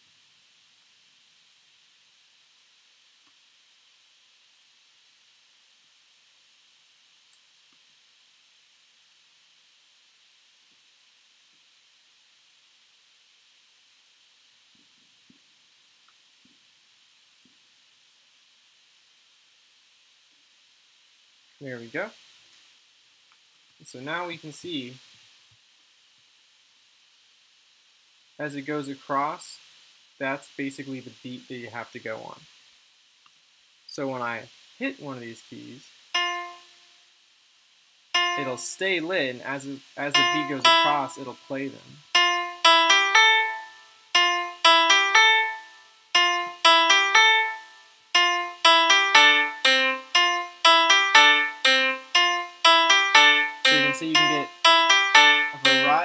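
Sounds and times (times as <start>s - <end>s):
looping piano phrase: 36.2s - 36.6s, 38.2s - 38.6s, 40.1s - 41.2s, 42.2s - 45.6s, 46.2s - 56.0s.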